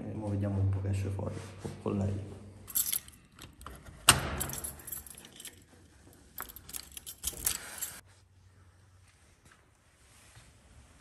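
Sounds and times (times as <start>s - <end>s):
keys jangling: 2.7s - 8.0s.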